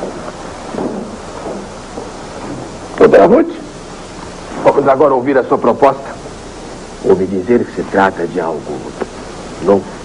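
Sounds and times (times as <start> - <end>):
people shuffling and chairs moving: 0.0 - 5.0
steady hiss: 0.0 - 10.0.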